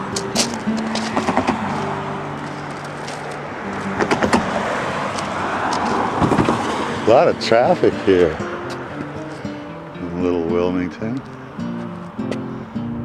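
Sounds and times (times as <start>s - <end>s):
cars driving past: 0.0s - 13.0s.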